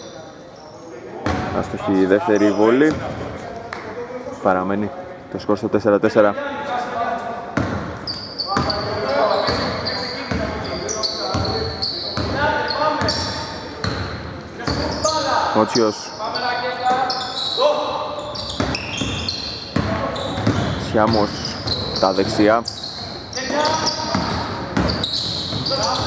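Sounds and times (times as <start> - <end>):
sneakers squeaking: 0.0 - 3.8, 7.5 - 26.0
players calling out: 8.0 - 26.0
basketball bouncing on hardwood: 19.7 - 21.3.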